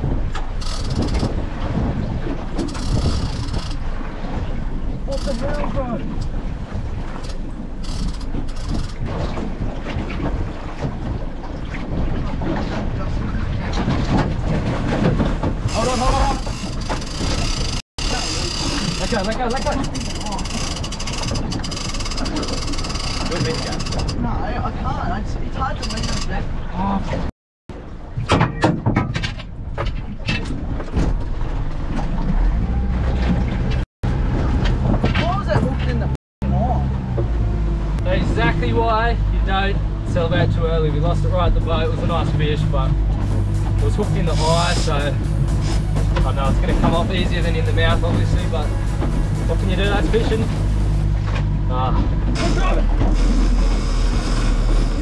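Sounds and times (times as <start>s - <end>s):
boat motor running: 0.0s - 27.9s, 31.1s - 55.0s
wind: 0.0s - 55.0s.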